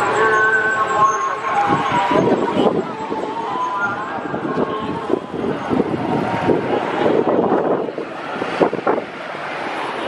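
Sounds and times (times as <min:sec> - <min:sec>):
vehicle engines running: 0:00.0 - 0:10.0
wind buffeting microphone: 0:01.4 - 0:10.0.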